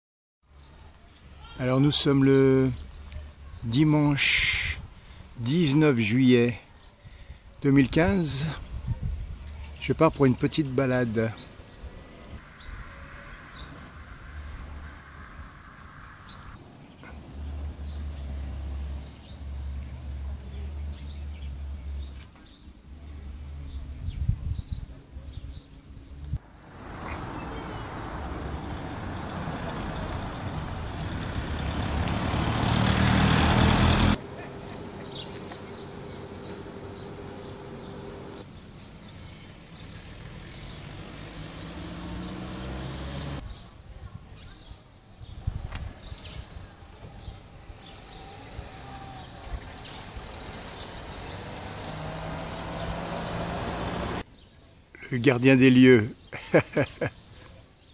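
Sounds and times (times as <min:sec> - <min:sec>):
street noise: 0:00.4 - 0:57.9
small birds chirping: 0:00.5 - 0:57.9
motor vehicle passing: 0:08.0 - 0:23.8, 0:26.3 - 0:43.6, 0:45.4 - 0:54.3.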